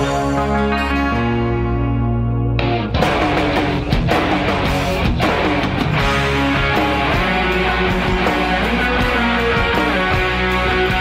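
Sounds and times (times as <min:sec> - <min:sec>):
distorted electric guitar chords: 0:00.0 - 0:11.0.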